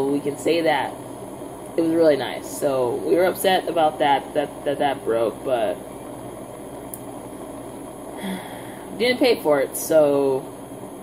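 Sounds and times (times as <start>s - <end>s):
butane torch hissing: 0.0s - 11.0s
soft breathy sound: 8.1s - 9.0s.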